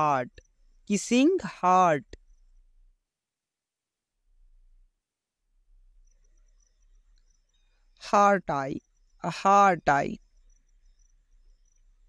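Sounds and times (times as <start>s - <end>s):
person speaking: 0.0s - 2.2s, 8.0s - 10.2s
faint high chirps: 0.0s - 3.0s, 5.6s - 12.0s.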